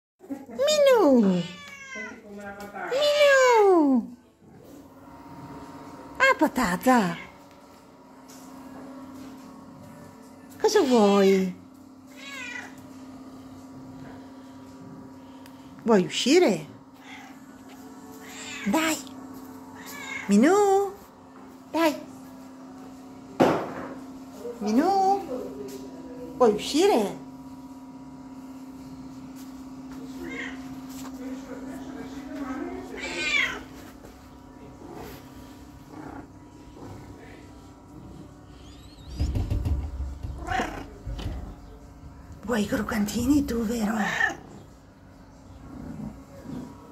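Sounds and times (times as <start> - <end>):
cat meowing: 1.2 - 2.2, 12.1 - 12.8, 19.8 - 20.3, 30.2 - 30.7, 33.0 - 33.7, 40.2 - 41.0
cat purring: 34.8 - 42.0, 45.6 - 46.8.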